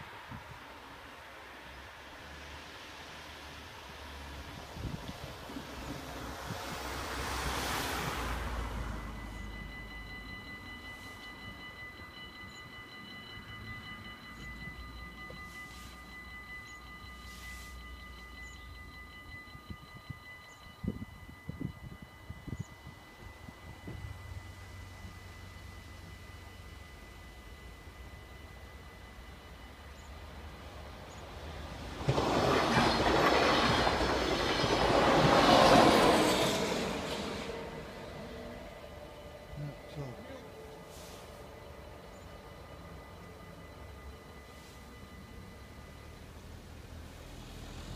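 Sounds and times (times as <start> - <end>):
level crossing warning bells: 3.5 - 47.9
car passing: 5.6 - 11.1, 31.4 - 47.9.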